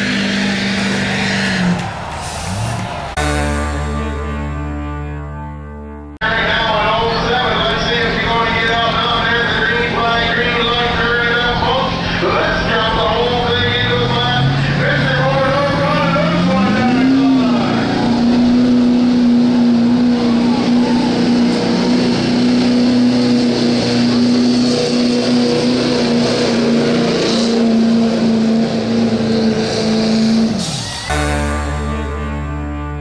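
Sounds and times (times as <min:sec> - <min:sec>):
diesel truck engine revving: 0:00.0 - 0:33.0.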